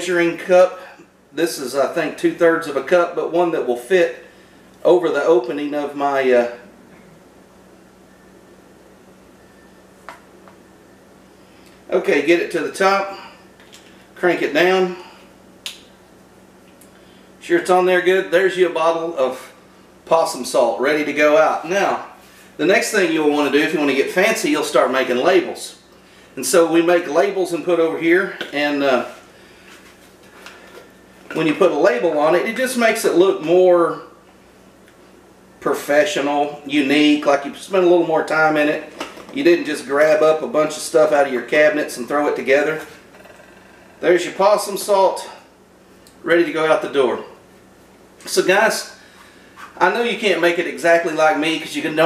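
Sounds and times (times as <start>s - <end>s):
faint steady hum: 0.0s - 52.0s.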